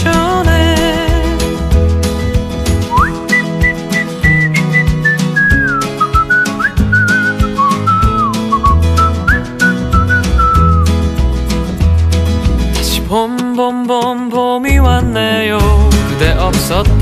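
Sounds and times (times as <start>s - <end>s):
pop backing track with beat and bass: 0.0s - 17.0s
whistled melody: 2.8s - 11.0s.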